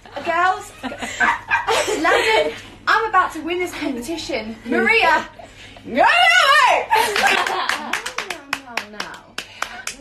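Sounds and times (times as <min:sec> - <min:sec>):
woman's voice: 0:00.1 - 0:00.8, 0:01.7 - 0:10.0.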